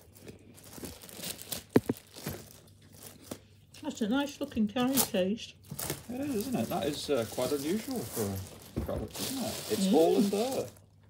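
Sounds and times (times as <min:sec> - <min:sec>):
plastic bag crinkling: 0:00.0 - 0:03.6, 0:04.9 - 0:11.0.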